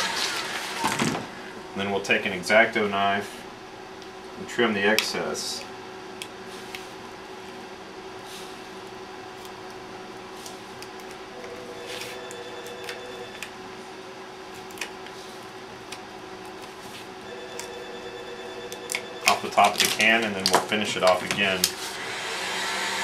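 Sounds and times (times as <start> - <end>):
steady hum: 0.0 - 23.0.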